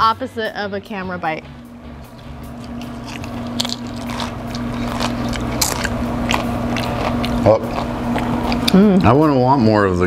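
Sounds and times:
steady low hum: 0.0s - 10.0s
crisp chip crunching: 2.5s - 8.8s.

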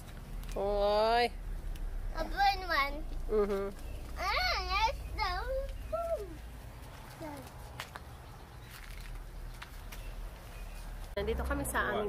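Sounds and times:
low steady rumble: 0.0s - 6.9s.

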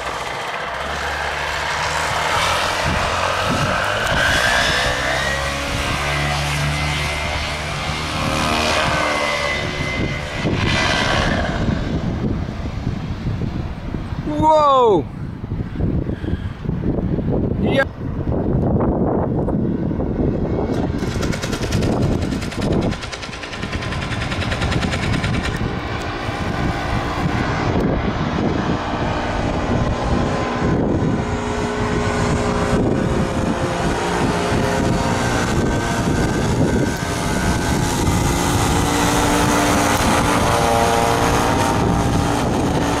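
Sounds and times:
paramotor engine droning: 0.0s - 14.2s, 15.0s - 43.0s.

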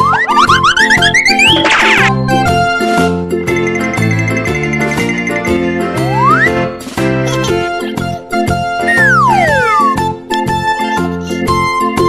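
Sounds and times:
children's background music: 0.0s - 12.0s
rising wobbling whistle effect: 6.0s - 6.5s, 8.9s - 10.0s.

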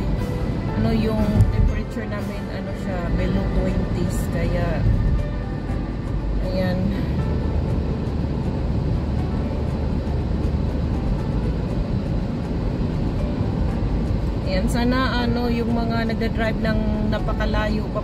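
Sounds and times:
car road and engine rumble: 0.0s - 18.0s.

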